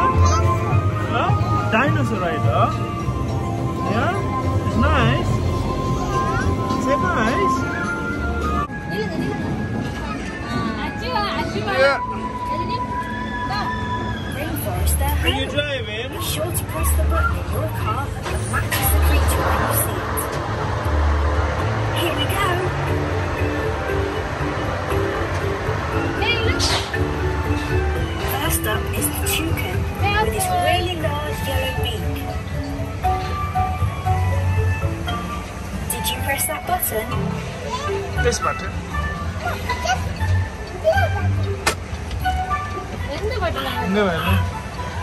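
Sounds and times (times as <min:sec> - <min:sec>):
music from ride car speakers: 0:20.1 - 0:45.0.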